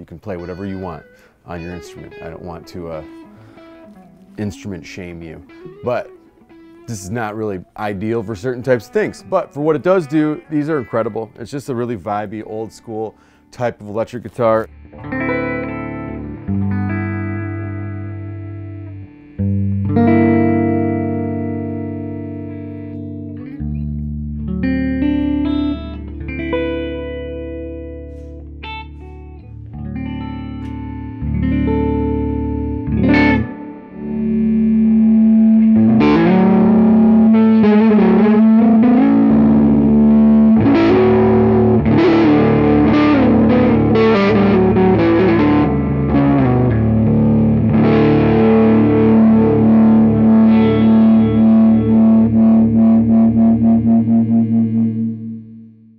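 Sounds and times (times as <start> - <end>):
electric guitar through an amp: 0.0 - 55.9.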